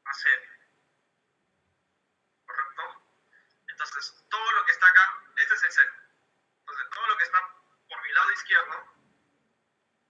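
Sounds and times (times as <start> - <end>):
person speaking over a phone line: 2.5 - 3.0, 6.7 - 8.9.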